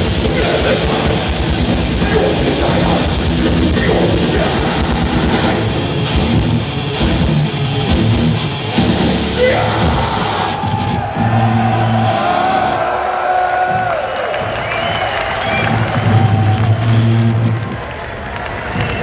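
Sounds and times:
death metal band playing live: 0:00.0 - 0:12.8
crowd cheering: 0:09.4 - 0:19.0.

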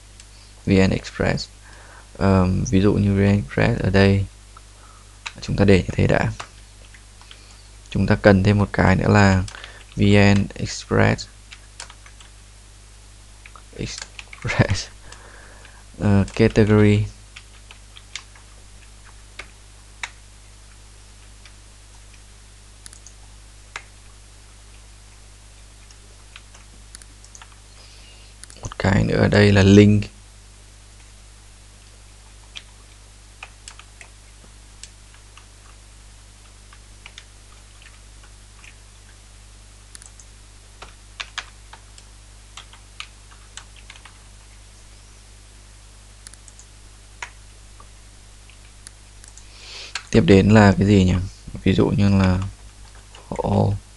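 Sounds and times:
low electrical hum: 0:00.0 - 0:53.9
computer keyboard typing: 0:11.5 - 0:12.3, 0:33.4 - 0:34.1, 0:39.9 - 0:41.8, 0:42.6 - 0:44.2.

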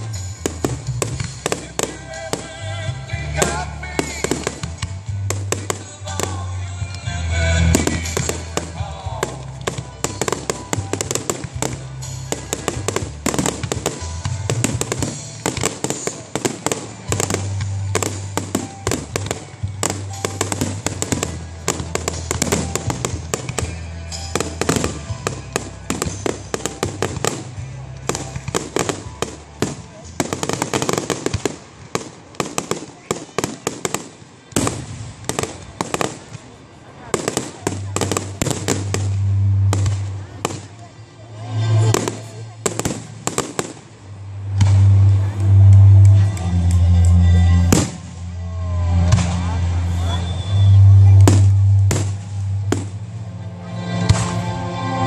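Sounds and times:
fireworks bursting and crackling: 0:00.0 - 0:53.2.

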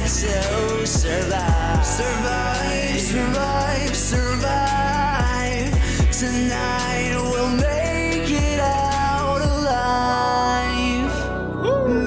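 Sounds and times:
deep bass notes sliding down: 0:00.0 - 0:12.0
person singing: 0:00.0 - 0:12.0.

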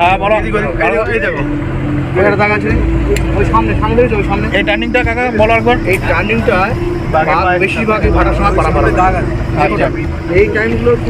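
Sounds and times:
man talking: 0:00.0 - 0:01.5, 0:02.1 - 0:11.0
boat engine droning: 0:00.0 - 0:11.0.

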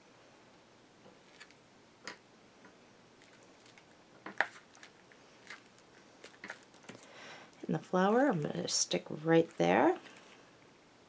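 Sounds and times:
paper rustling: 0:03.2 - 0:07.0.

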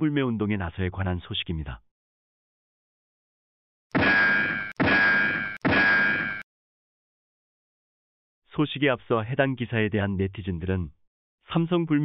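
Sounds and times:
metallic clang effects: 0:03.9 - 0:06.4.

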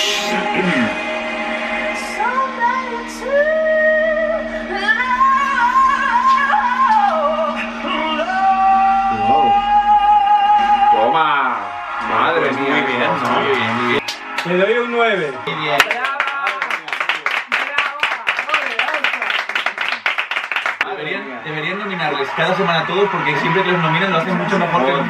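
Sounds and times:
backing music: 0:00.0 - 0:16.5
man singing with vibrato: 0:07.5 - 0:10.9.

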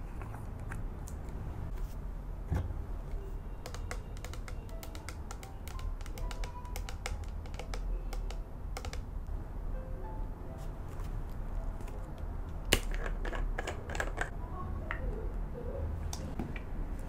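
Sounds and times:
soft music: 0:03.0 - 0:14.2
fingernails tapping plastic bottle: 0:03.5 - 0:09.1.

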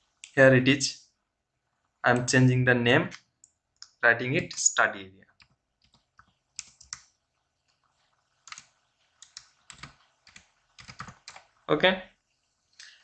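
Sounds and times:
keyboard typing: 0:05.4 - 0:07.1, 0:08.4 - 0:11.6.

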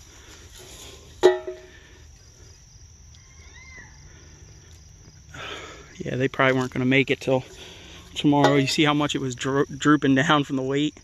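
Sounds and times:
insect trill: 0:00.0 - 0:11.0.

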